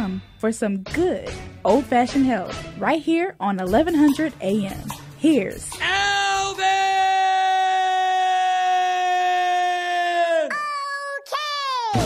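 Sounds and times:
person yelling a high note: 0:05.8 - 0:12.0.

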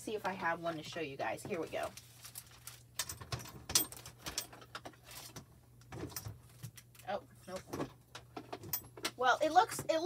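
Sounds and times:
small items clicking and rustling: 0:01.5 - 0:09.1.

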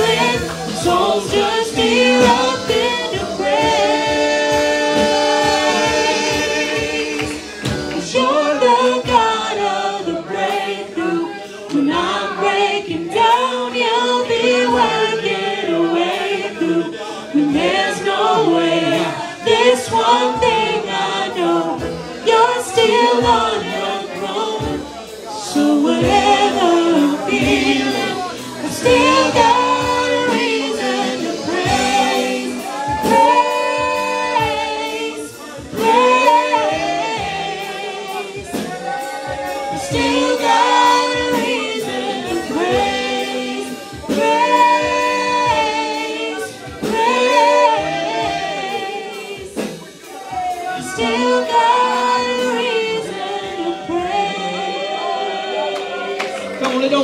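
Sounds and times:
group singing gospel song: 0:00.0 - 0:57.0.

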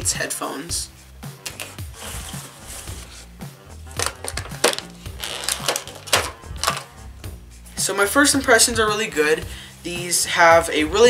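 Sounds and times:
background music with steady beat: 0:00.0 - 0:11.0
cardboard box handling clicks and scrapes: 0:01.9 - 0:03.4.

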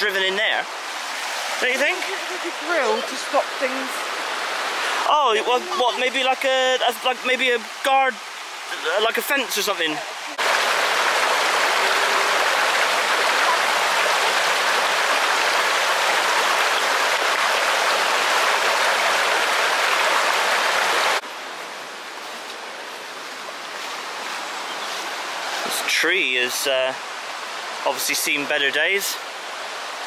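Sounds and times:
river rushing over stones: 0:00.0 - 0:30.0.

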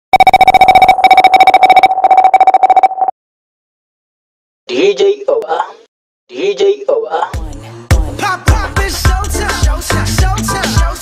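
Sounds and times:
electronic ringer trilling: 0:00.1 - 0:03.1.

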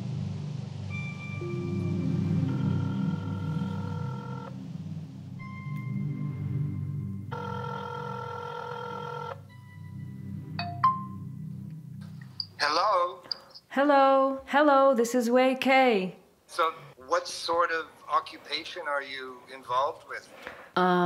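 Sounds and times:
low droning music: 0:00.0 - 0:13.1
phone ringing tone: 0:00.9 - 0:12.6.

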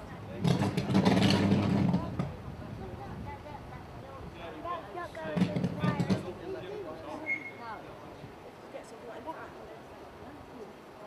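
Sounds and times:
distant voices: 0:00.0 - 0:11.0.

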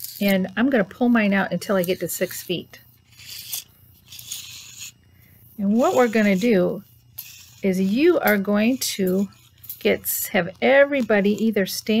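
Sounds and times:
tape measure blade scraping out: 0:00.0 - 0:05.0, 0:05.6 - 0:12.0.

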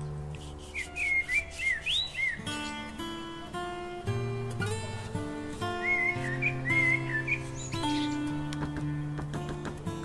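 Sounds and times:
plucked acoustic guitar: 0:00.0 - 0:10.0
high chirping glides: 0:00.4 - 0:02.9, 0:05.8 - 0:08.3.

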